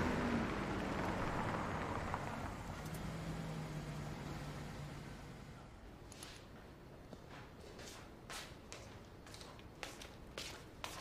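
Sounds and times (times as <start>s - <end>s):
soft scuffing footsteps: 6.1s - 11.0s.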